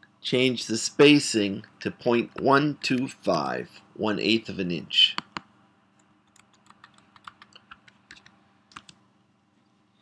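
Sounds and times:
computer keyboard typing: 6.2 - 9.0.

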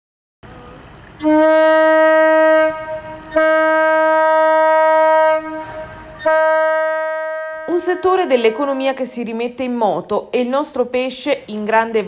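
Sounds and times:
boat horn blasts: 1.2 - 9.1.

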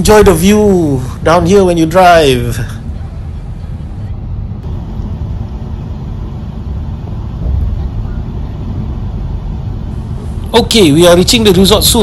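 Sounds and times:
tyre and road noise: 0.0 - 12.0.

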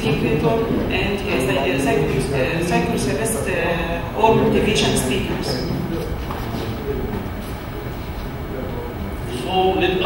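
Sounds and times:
large room background noise: 0.0 - 10.0.

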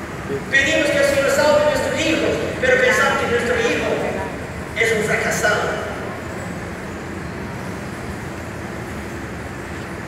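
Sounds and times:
low rumble and hiss in a hall: 0.0 - 10.0.

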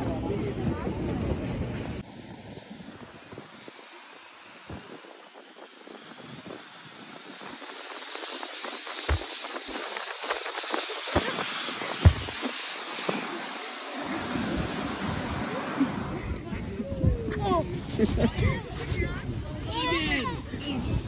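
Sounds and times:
wind on microphone: 0.0 - 21.0
snow tube hissing on snow: 0.4 - 21.0
snow tube thumping over bumps: 8.2 - 13.8.

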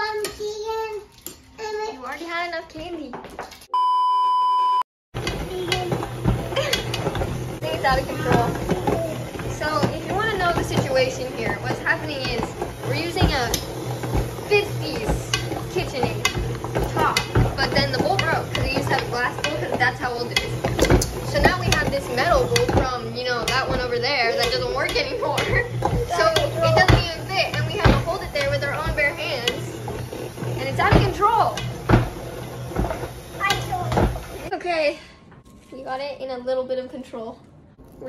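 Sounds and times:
utensils and dishes clattering: 5.2 - 34.5.

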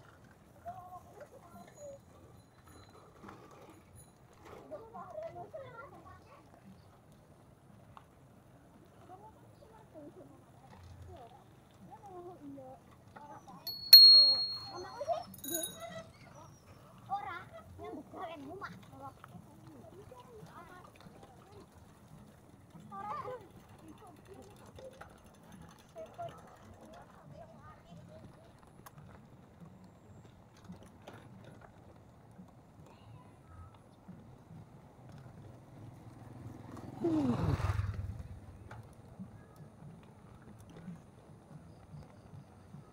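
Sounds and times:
bicycle bell ringing: 13.7 - 16.1
bike rolling over gravel: 17.7 - 37.0.

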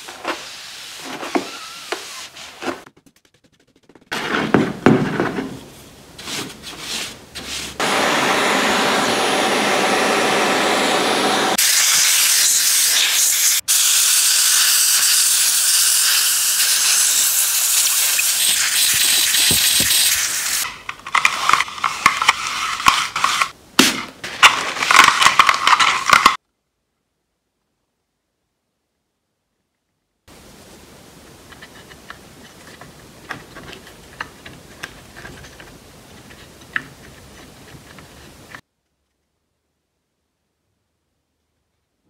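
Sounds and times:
cloth rubbing on metal panel: 0.0 - 4.8
compressed air blow gun hissing: 10.6 - 20.6.

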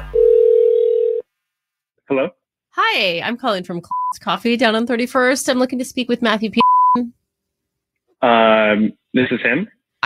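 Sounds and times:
telephone ringback tone: 0.1 - 1.2.

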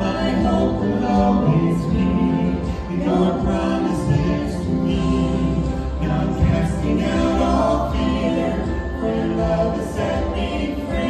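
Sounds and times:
vocal trio singing in harmony: 0.0 - 11.0.

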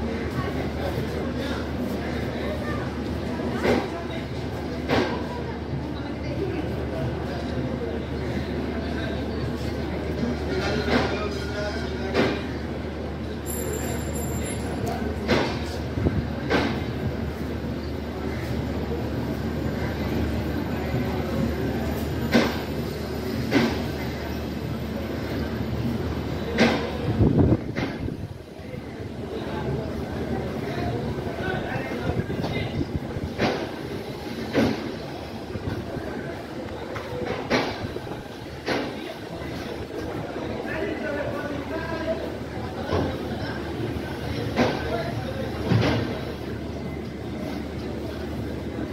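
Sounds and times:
train coaches rumbling past: 0.0 - 48.9.

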